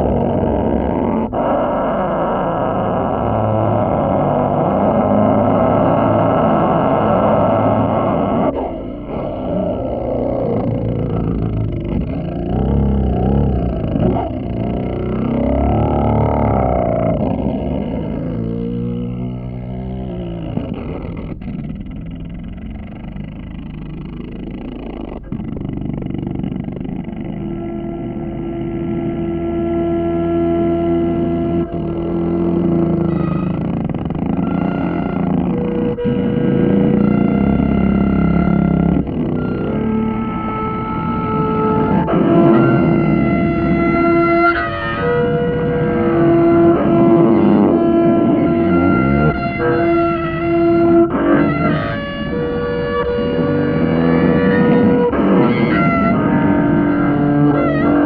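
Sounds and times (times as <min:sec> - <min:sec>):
double bass improvisation: 0:00.0 - 0:58.0.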